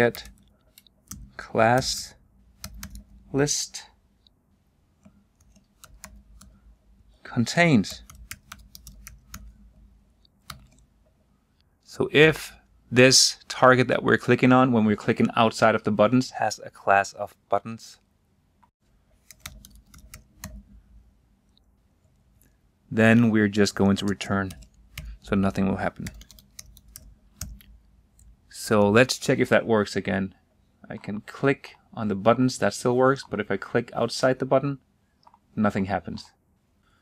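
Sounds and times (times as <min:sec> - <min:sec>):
typing on computer keyboard: 0:02.6 - 0:03.1, 0:05.4 - 0:06.6, 0:07.8 - 0:09.6, 0:10.4 - 0:10.8, 0:19.3 - 0:20.6, 0:25.9 - 0:27.7.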